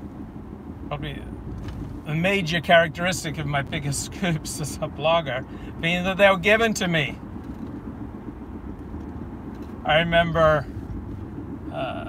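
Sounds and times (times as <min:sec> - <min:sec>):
road and engine rumble in car: 0:00.0 - 0:12.0.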